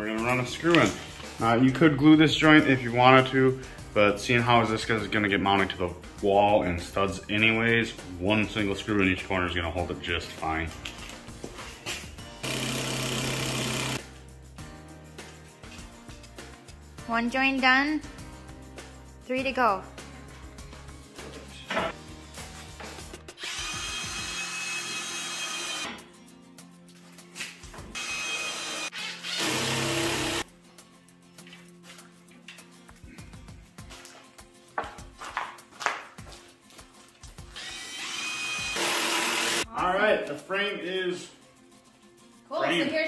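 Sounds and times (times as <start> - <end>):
cordless drill driving screws: 12.4 - 14.0, 23.4 - 25.9, 28.0 - 30.4, 37.6 - 39.6.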